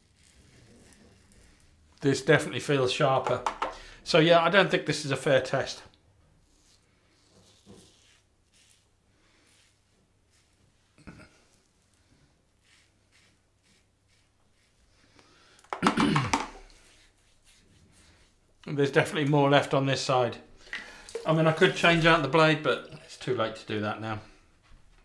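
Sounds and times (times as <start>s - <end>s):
razor scraping stubble: 0.0s - 1.8s, 12.6s - 14.9s.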